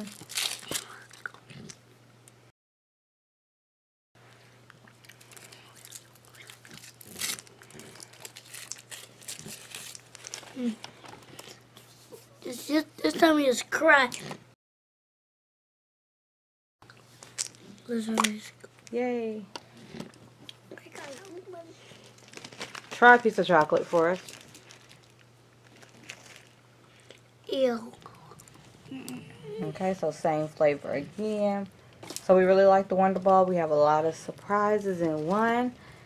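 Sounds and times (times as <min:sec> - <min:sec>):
foil wrapper crinkling: 0:00.0 - 0:01.4, 0:05.0 - 0:11.6, 0:20.8 - 0:27.3
faint voice murmuring: 0:28.9 - 0:29.8.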